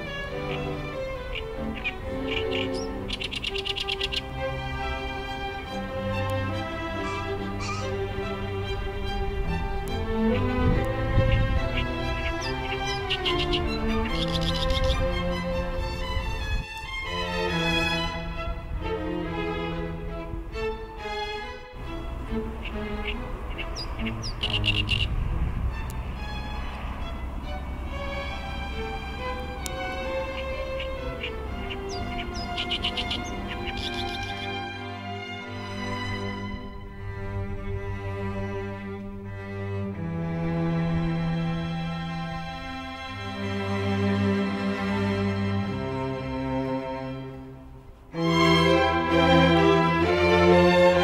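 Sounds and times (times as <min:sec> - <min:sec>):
songbird chirps: 0:00.0 - 0:18.4, 0:20.6 - 0:39.2
background string music: 0:00.0 - 0:51.0
bird singing harsh notes: 0:00.4 - 0:04.4, 0:06.9 - 0:08.0, 0:11.2 - 0:15.2, 0:21.8 - 0:25.3, 0:29.6 - 0:34.6.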